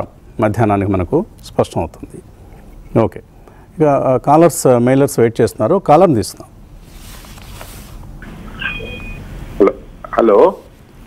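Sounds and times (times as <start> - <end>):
telephone line hiss: 8.3 - 10.5
short high beep: 8.5 - 9.3.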